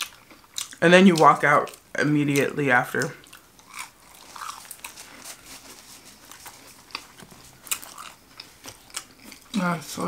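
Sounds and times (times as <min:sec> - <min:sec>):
person chewing food: 0:00.0 - 0:09.7.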